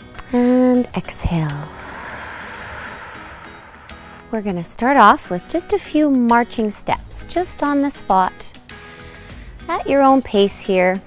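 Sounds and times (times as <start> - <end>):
quiet background music: 0.0 - 11.0
long breath exhaled: 1.6 - 4.4, 8.8 - 9.6.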